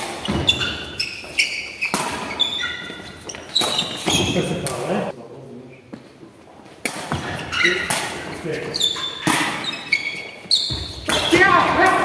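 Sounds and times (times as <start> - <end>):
shoe squeaks on floor: 0.2 - 4.7, 7.1 - 11.6.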